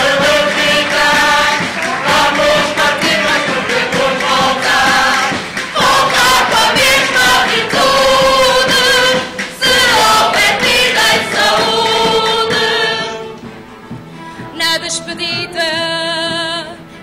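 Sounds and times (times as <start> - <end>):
group singing in chorus: 0.0 - 13.6
guitars strumming: 0.0 - 17.0.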